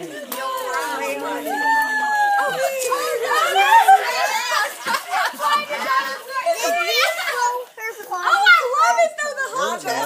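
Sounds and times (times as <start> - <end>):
excited chatter of voices: 0.0 - 10.0.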